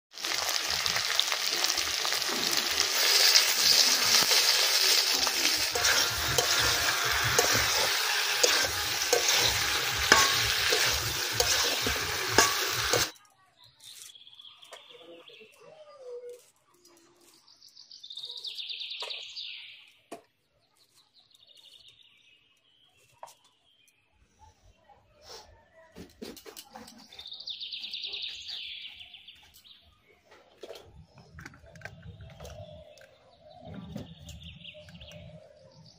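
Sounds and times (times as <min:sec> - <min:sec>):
chicken frying in oil: 0:00.1 - 0:13.1
birds chirping: 0:26.4 - 0:35.9.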